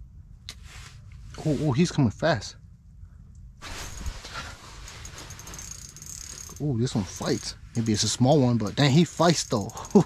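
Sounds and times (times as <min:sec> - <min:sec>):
steady rustling hiss: 0:00.5 - 0:10.0
fishing reel being cranked: 0:04.9 - 0:08.1, 0:09.2 - 0:10.0.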